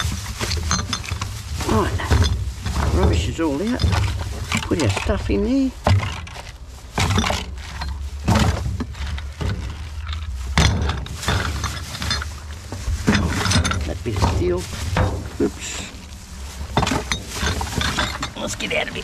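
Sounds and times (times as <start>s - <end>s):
glass bottles clinking: 0.0s - 19.0s
handling knocks: 0.0s - 19.0s
plastic bag rustling: 0.0s - 19.0s.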